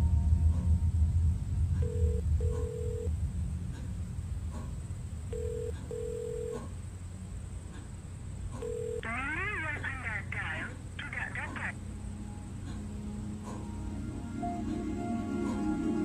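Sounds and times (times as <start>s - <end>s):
low background rumble: 0.0s - 16.0s
telephone ringback tone: 1.8s - 3.1s, 5.3s - 6.6s, 8.6s - 9.4s.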